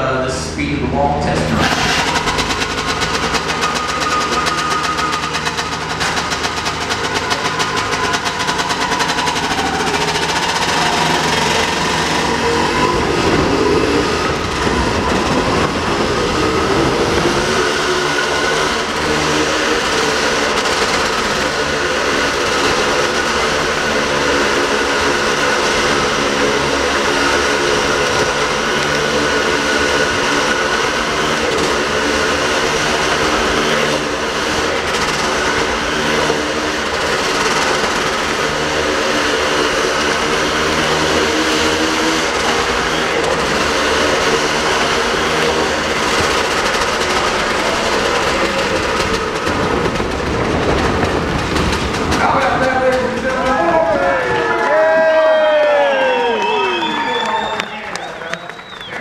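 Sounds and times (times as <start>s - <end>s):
motorcycle wheels rumbling on planks: 1.3s - 59.0s.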